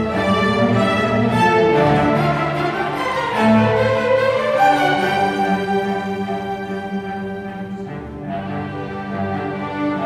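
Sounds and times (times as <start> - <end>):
string orchestra bowed chords: 0.0 - 10.0.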